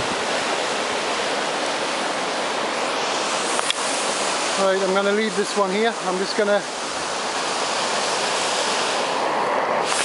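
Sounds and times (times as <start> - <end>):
river water rushing over weir: 0.0 - 10.0.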